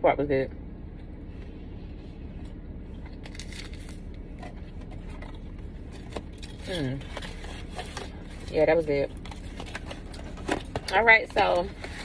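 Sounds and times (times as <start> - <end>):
low hum inside car: 0.0 - 12.0
paper wrapper crinkling: 3.2 - 4.2.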